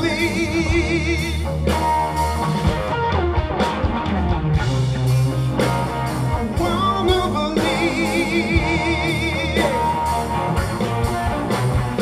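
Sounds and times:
man singing: 0.0 - 1.6, 6.5 - 10.3
bass guitar: 0.0 - 12.0
drums: 0.0 - 12.0
electric guitar: 0.0 - 12.0.

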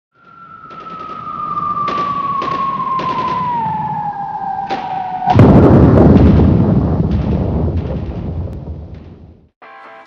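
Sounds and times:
downward gliding tone: 0.2 - 6.2
sharp hits: 0.2 - 9.5
low rumble: 1.2 - 9.5.

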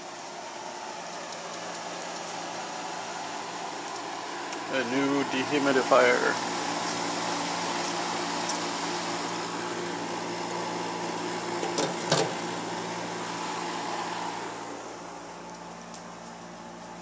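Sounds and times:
dehumidifier hum and fan: 0.0 - 17.0.

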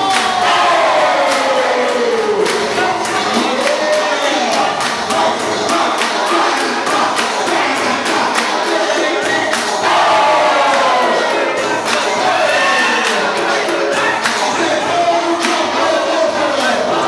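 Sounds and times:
crowd shouting and cheering: 0.0 - 17.0
music: 0.0 - 17.0.

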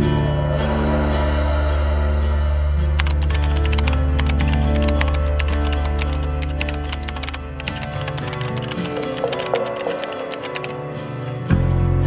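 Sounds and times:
background music with low tones: 0.0 - 12.0
rapid keyboard typing clicks: 3.0 - 10.8.

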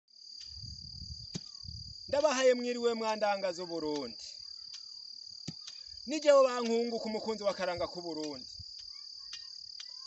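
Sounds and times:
cricket trilling: 0.1 - 10.0.

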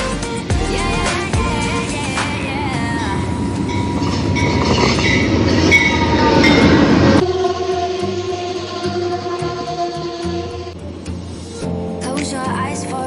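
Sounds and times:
background music: 0.0 - 5.9, 7.2 - 13.0
train rumble and wheel noise: 0.0 - 13.0
high squealing tones: 2.8 - 11.6.

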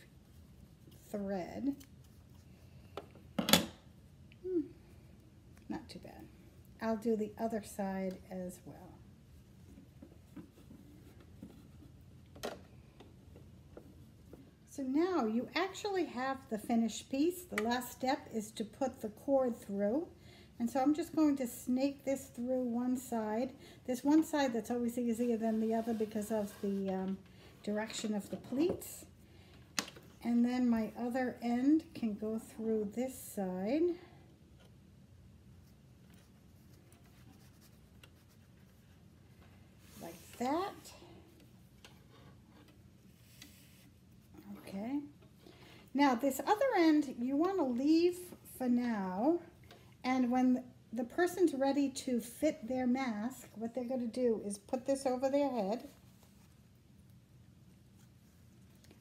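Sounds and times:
faint handling noise: 34.3 - 48.5.

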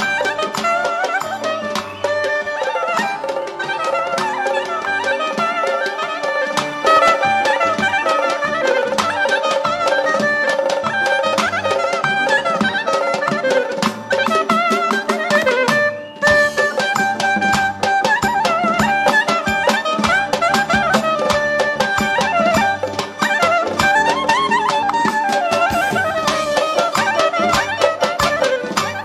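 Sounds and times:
hand drum beat: 0.0 - 29.0
reed wind instrument melody: 0.0 - 29.0.

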